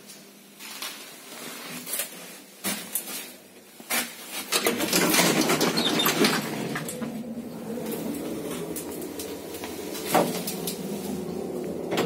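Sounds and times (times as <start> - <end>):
clicks and knocks in a lift: 3.9 - 7.2.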